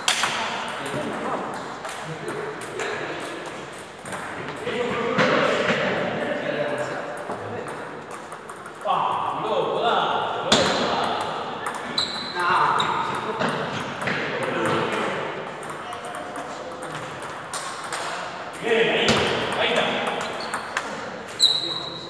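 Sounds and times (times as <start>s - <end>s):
table tennis ball tapping: 0.1s - 4.7s, 7.1s - 9.3s, 10.5s - 20.9s.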